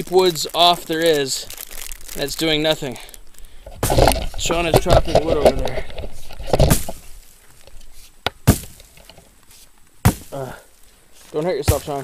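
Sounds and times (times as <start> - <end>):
axe chopping wood: 3.8 - 4.2, 6.5 - 7.0, 8.3 - 8.9, 10.0 - 10.5, 11.6 - 12.0.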